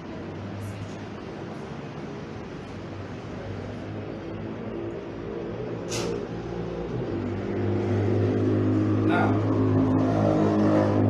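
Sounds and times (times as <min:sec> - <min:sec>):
low engine hum: 0:00.0 - 0:11.0
brief sharp noises: 0:05.9 - 0:06.2.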